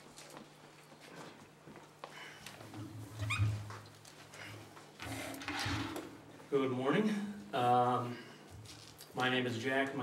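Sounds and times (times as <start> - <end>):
chair squeaking: 3.2 - 3.8.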